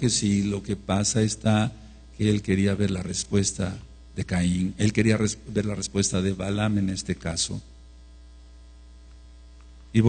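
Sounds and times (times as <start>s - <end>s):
man's voice: 0.0s - 7.6s
low electrical mains hum: 0.0s - 10.0s.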